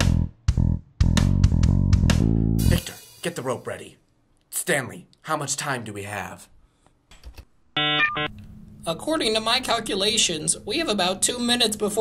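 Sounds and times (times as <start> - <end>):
buzzy computer bleeps: 7.8 - 8.3.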